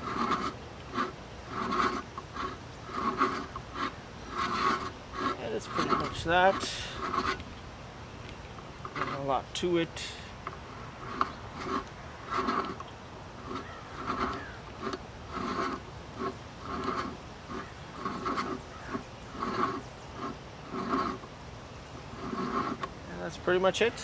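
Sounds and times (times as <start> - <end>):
reamer scraping metal: 0.0 - 7.4, 8.8 - 10.3, 10.9 - 12.8, 13.4 - 21.3, 22.0 - 24.0.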